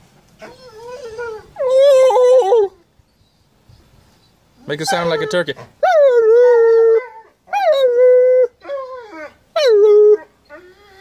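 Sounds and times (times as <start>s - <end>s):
dog howling: 0.4s - 2.8s.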